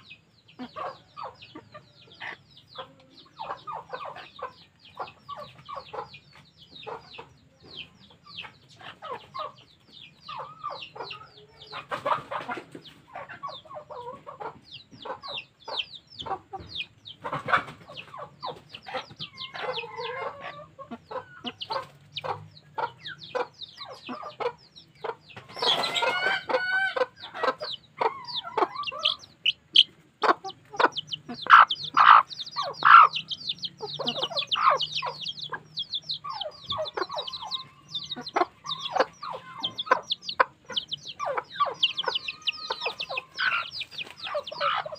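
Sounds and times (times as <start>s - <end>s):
chickens clucking: 0.0s - 44.9s.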